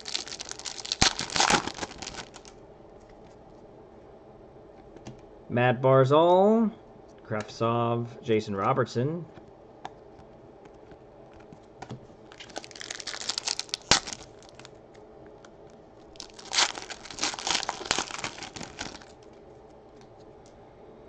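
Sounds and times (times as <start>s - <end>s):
foil wrapper crinkling and tearing: 0.0s - 2.6s, 12.3s - 14.7s, 16.0s - 19.4s.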